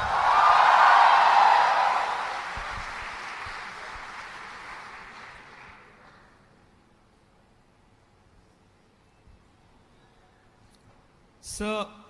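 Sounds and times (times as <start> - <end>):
audience applauding and cheering: 0.0 - 6.2.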